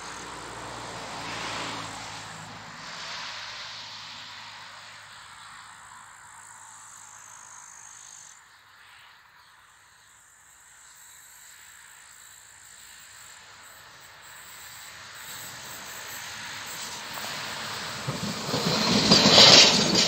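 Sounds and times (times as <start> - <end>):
electric train rolling: 12.8 - 20.0.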